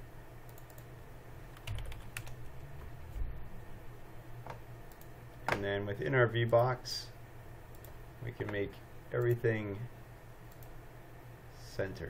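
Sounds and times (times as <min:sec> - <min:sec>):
low steady hum: 0:00.0 - 0:12.0
computer keyboard typing: 0:01.5 - 0:02.4.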